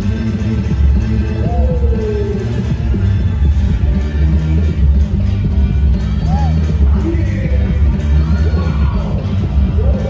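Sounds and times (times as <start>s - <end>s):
loud music with heavy bass: 0.0s - 10.0s.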